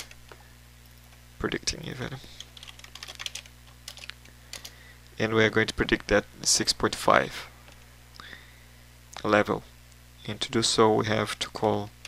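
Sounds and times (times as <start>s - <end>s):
computer keyboard typing: 2.4s - 4.7s.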